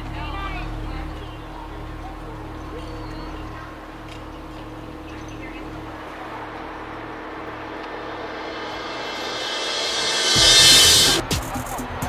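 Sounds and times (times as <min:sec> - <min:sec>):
traffic hum: 0:00.0 - 0:11.3
vehicle passing: 0:03.6 - 0:11.2.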